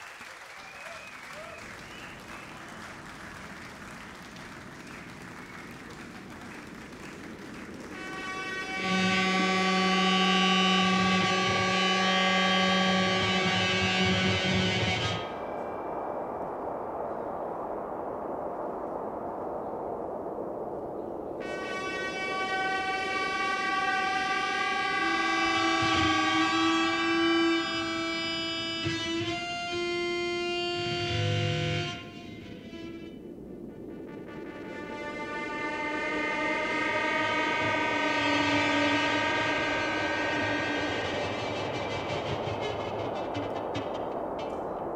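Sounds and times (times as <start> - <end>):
electric violin long notes: 7.9 - 15.6, 21.4 - 33.3, 34.1 - 44.6.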